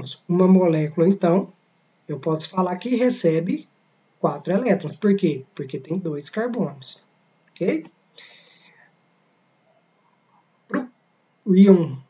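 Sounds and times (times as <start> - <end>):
soft breath: 8.1 - 10.6.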